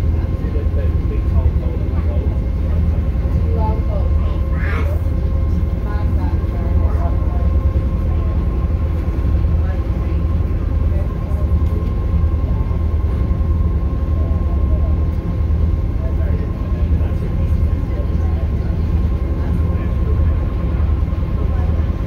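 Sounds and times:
boat engine drone: 0.0s - 22.0s
faint voices: 0.0s - 22.0s.

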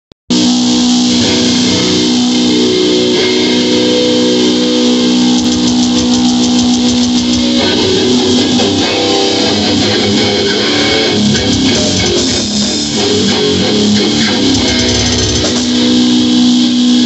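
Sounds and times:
electric guitar sustained notes: 0.3s - 17.0s.

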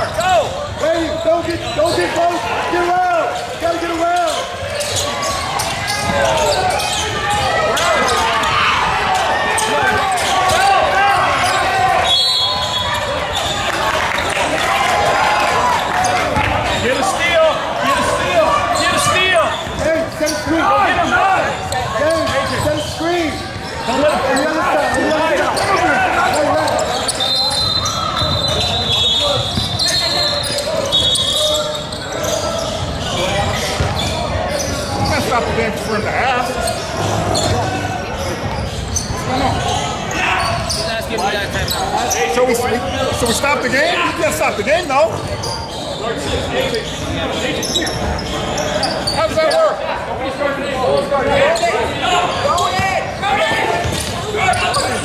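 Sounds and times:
sneaker squeaks: 0.0s - 14.9s, 15.7s - 55.0s.

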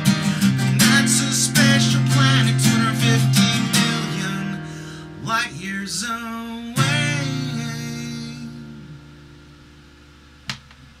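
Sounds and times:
acoustic guitar chord strummed: 0.0s - 10.4s.

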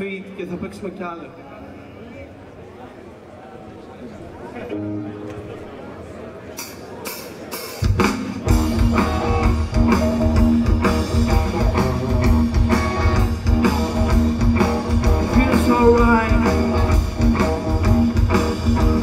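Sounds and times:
live rock band playing: 4.7s - 19.0s.

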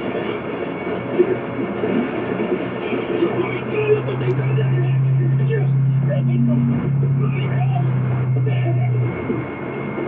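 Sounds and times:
steady low drone: 0.0s - 10.0s
faint indistinct voices: 2.7s - 9.5s.

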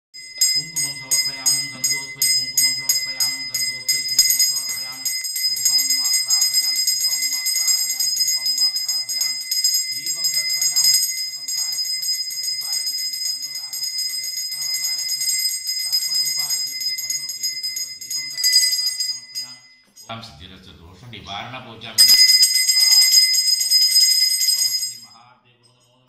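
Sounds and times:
brass bell ringing: 0.2s - 20.3s, 22.0s - 25.2s
low voice chanting: 0.3s - 20.5s.

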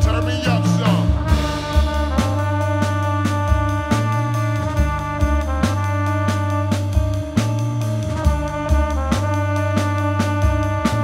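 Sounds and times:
drum hits: 0.0s - 11.0s
electric bass: 0.0s - 11.0s
horn section holding a chord: 0.0s - 11.0s.

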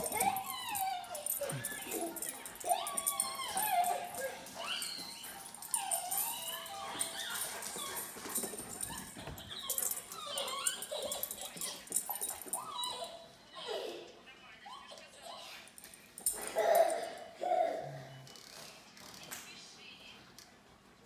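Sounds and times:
dog whining and yelping: 0.0s - 13.9s.

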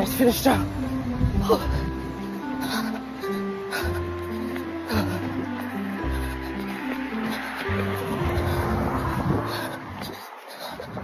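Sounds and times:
background music: 0.0s - 10.5s
road traffic rumble: 0.0s - 11.0s.

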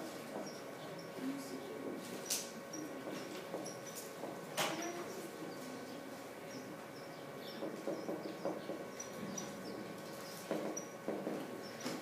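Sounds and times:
faint steady hum: 0.0s - 12.0s
marker squeaking on whiteboard: 0.3s - 1.2s, 2.7s - 5.2s, 6.5s - 12.0s.

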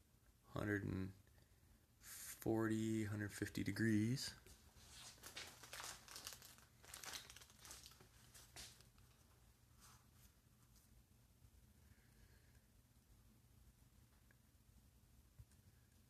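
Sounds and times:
low steady hum: 0.0s - 16.0s
rustling and crinkling: 4.4s - 11.2s.

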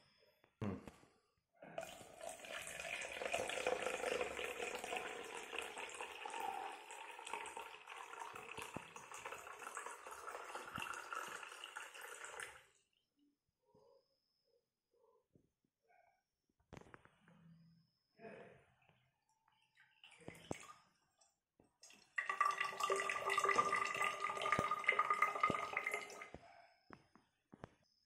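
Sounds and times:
water pouring from jug: 1.8s - 12.8s, 19.9s - 20.8s, 21.8s - 26.4s.

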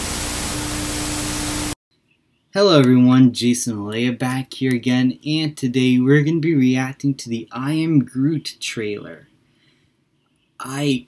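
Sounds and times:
white noise hiss: 0.0s - 1.8s.

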